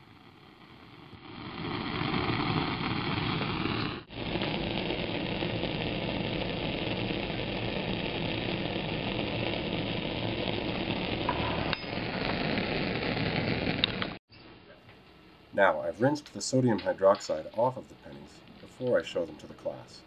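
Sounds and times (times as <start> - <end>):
gas burner flame hissing: 0.0 - 14.2, 14.8 - 20.0
liquid boiling hard: 0.0 - 14.2.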